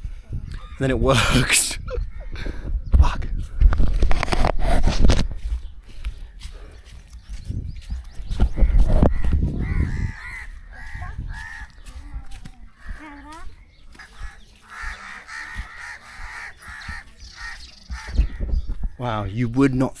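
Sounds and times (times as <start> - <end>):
crows cawing: 0.6 - 1.0, 2.0 - 2.7, 8.4 - 18.6
low thumps: 17.9 - 19.1.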